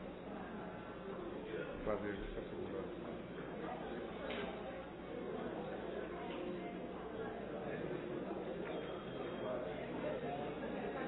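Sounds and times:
murmur of many people talking: 0:00.0 - 0:11.0.

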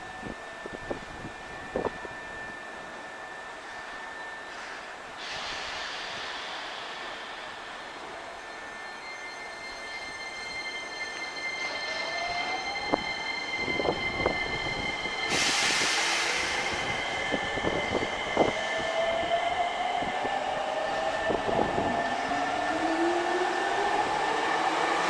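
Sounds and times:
motor and wheel whine: 0:00.0 - 0:05.5, 0:10.5 - 0:25.0
electric train rolling: 0:00.0 - 0:25.0
air hiss: 0:04.5 - 0:08.2, 0:15.2 - 0:18.6.

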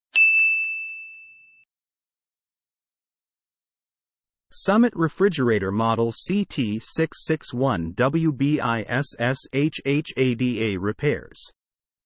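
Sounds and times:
bell-like chime ding: 0:00.1 - 0:01.7.

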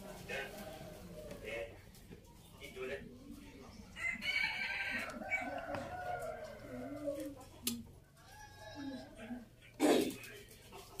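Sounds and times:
rooster crowing: 0:04.0 - 0:07.1.

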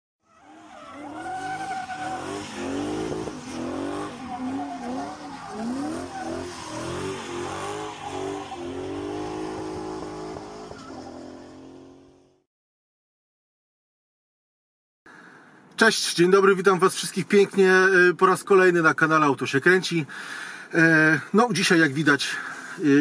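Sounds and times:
car tyres squealing: 0:00.2 - 0:12.2
car engine: 0:00.4 - 0:12.4.

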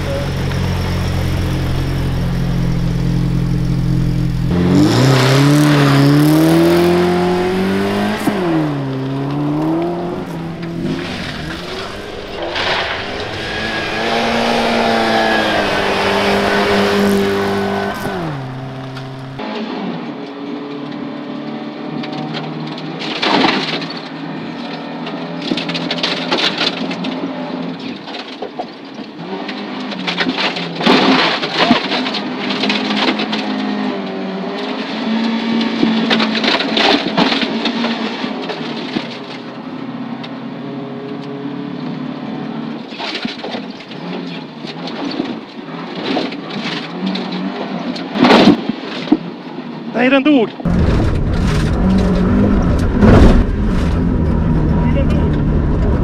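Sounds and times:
rally car engine passing: 0:00.0 - 0:20.2
car engine running hard: 0:00.0 - 0:27.8, 0:49.2 - 0:56.0
gravel rattling against car underside: 0:22.0 - 0:40.5, 0:42.5 - 0:56.0.

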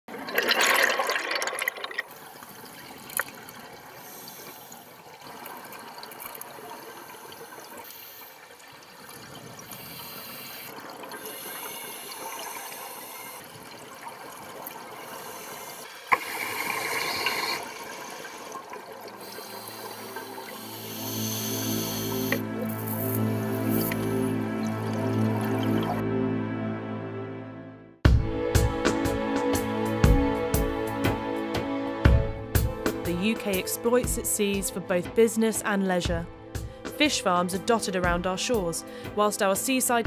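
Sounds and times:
diver's exhaled bubbles gushing: 0:00.1 - 0:02.2
underwater hiss: 0:03.9 - 0:05.1, 0:06.6 - 0:08.6, 0:09.4 - 0:13.6, 0:14.9 - 0:25.9.

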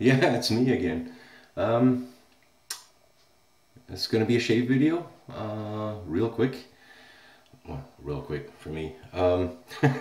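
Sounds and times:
speech: 0:00.0 - 0:02.1, 0:03.8 - 0:06.7, 0:07.6 - 0:09.7.

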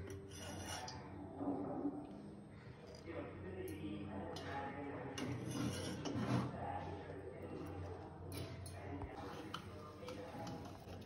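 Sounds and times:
glass bowl scraping a pan: 0:00.0 - 0:01.1, 0:05.2 - 0:06.6.

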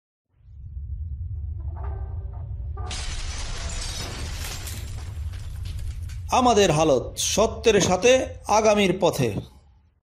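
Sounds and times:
deep steady rumble: 0:00.4 - 0:07.7
shattering crash of debris: 0:02.9 - 0:06.8.

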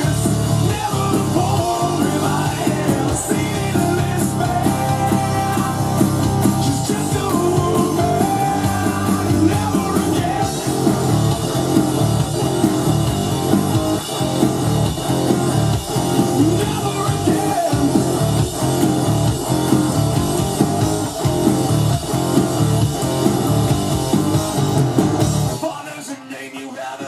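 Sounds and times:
electric guitar playing: 0:00.0 - 0:25.6
rock backing track: 0:00.0 - 0:26.3.

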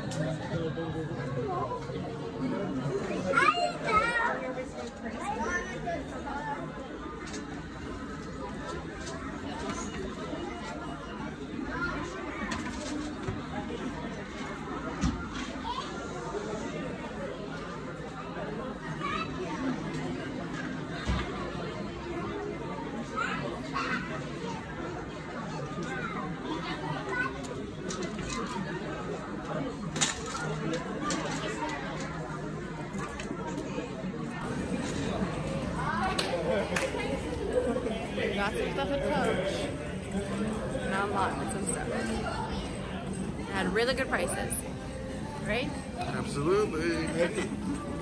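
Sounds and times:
chatter of shoppers: 0:00.0 - 0:48.0
murmur of people talking: 0:00.0 - 0:48.0
children's voices: 0:03.1 - 0:04.6.

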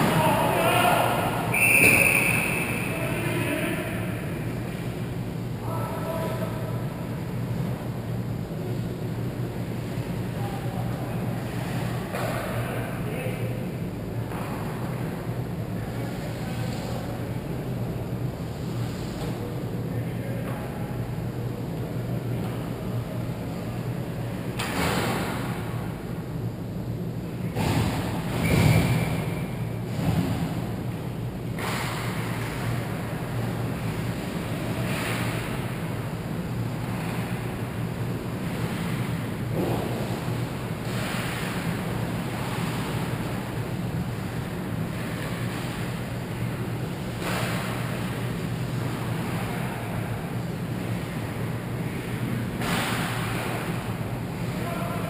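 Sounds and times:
steady rushing hum: 0:00.0 - 0:55.0.

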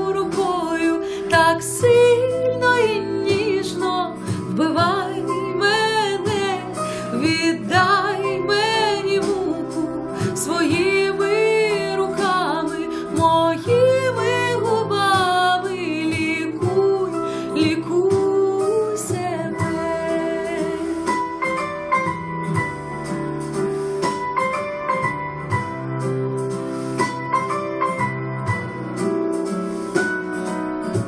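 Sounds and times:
woman singing with vibrato: 0:00.0 - 0:21.1
instrumental backing track: 0:00.0 - 0:31.0.

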